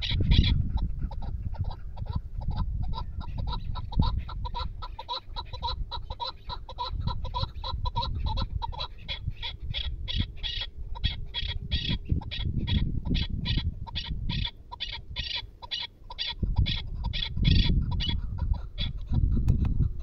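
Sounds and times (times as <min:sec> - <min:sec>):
partridge calling: 0:00.0 - 0:20.0.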